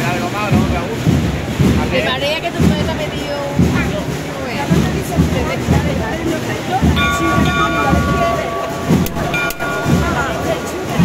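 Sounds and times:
crowd murmur: 0:00.0 - 0:11.0
bell ringing: 0:07.0 - 0:11.0.

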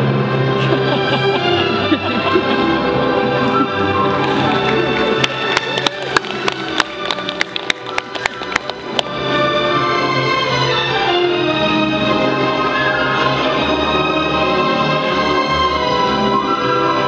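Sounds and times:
orchestral music with strings: 0:00.0 - 0:17.0.

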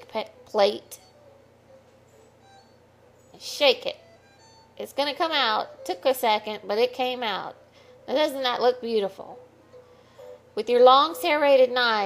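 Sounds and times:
faint background music: 0:00.0 - 0:12.0
low steady hum: 0:00.0 - 0:12.0.

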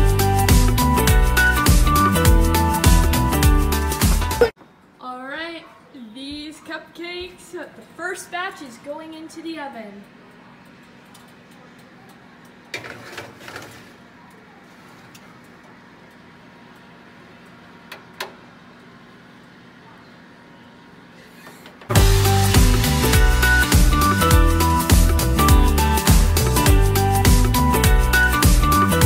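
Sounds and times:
loud background music: 0:00.0 - 0:04.5, 0:21.9 - 0:29.0
metal baking tray clattering: 0:12.7 - 0:14.0.

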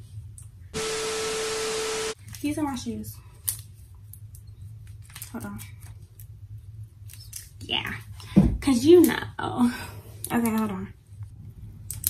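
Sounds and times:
tv static hiss with tone: 0:00.8 - 0:02.2.

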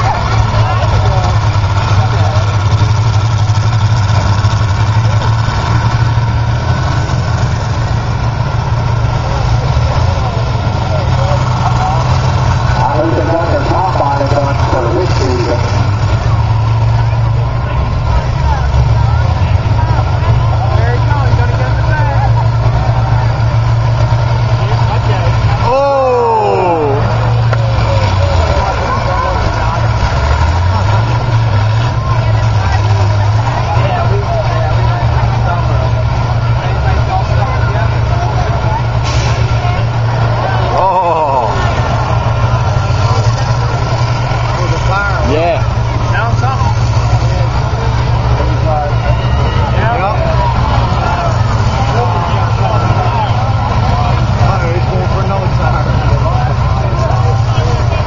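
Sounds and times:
combine harvester engines running: 0:00.0 - 0:58.0.

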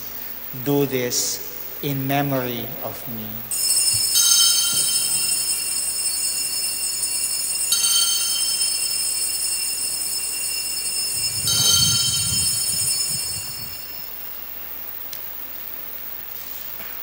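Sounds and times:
altar bells ringing: 0:02.0 - 0:14.4.

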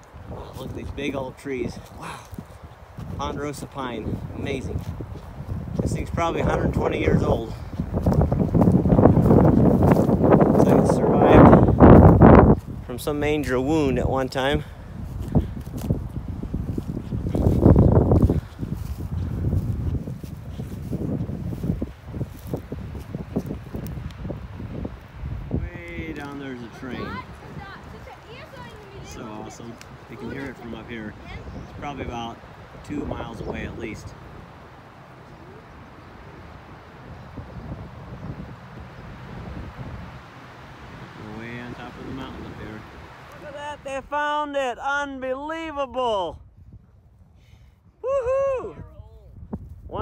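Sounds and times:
footsteps through dry grass: 0:00.0 - 0:13.9, 0:14.6 - 0:43.9
wind buffeting microphone: 0:00.0 - 0:44.8, 0:45.5 - 0:50.0.

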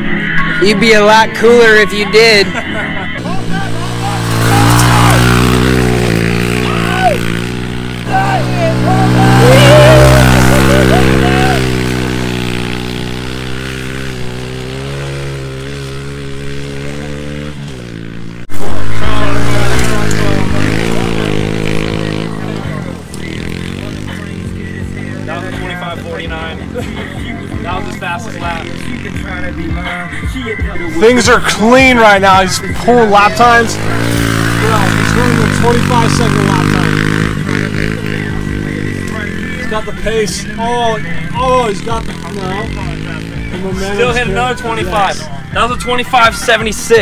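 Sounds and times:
motorbike engine revving: 0:02.4 - 0:47.0.

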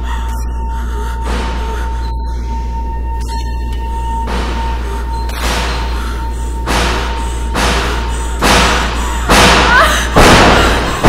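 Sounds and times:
low steady drone: 0:00.0 - 0:11.0
heavy thuds: 0:04.2 - 0:11.0.

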